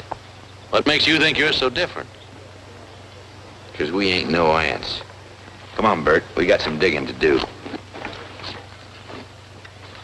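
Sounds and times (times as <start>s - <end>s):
film soundtrack hum and hiss: 0.0s - 10.0s.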